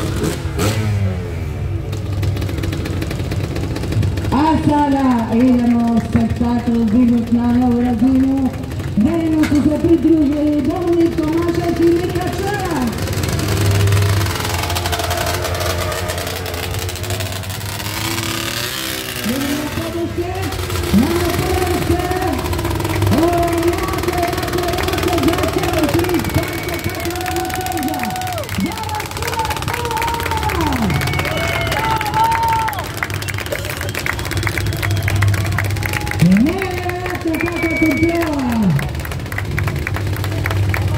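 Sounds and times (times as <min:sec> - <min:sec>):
quad bike engine revving: 0:00.0 - 0:40.9.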